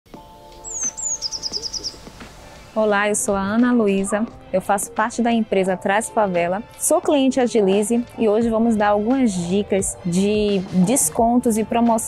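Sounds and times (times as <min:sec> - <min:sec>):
faint steady musical tone: 0:00.1 - 0:12.0
bird calling: 0:00.6 - 0:03.0.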